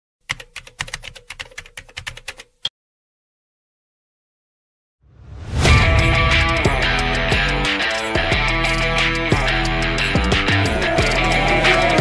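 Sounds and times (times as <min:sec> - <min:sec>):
keyboard typing clicks: 0:00.3 - 0:02.7.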